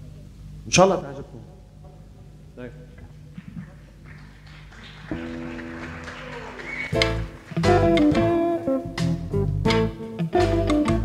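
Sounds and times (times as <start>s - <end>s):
amplifier hum: 0.0s - 11.0s
electric guitar note ringing: 5.1s - 11.0s.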